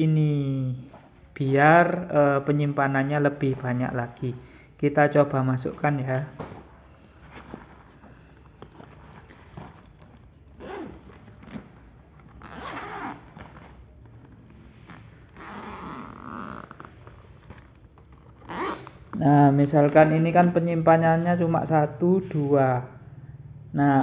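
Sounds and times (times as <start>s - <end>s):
nylon fabric rustling: 5.2s - 21.7s
zipper being drawn open: 8.5s - 19.2s.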